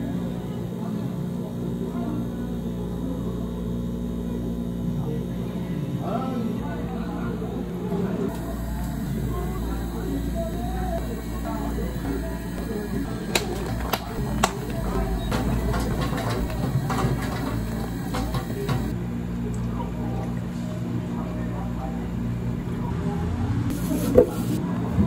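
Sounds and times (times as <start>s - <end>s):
low hum of cafe equipment: 0.0s - 25.0s.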